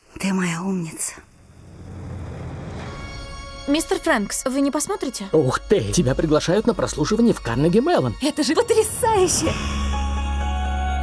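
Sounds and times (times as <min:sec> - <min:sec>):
low steady rumble: 0:00.9 - 0:03.8.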